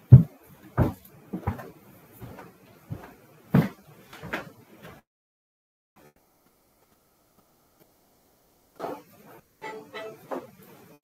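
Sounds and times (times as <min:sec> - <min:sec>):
handling knocks and bumps: 0:00.1 - 0:05.0.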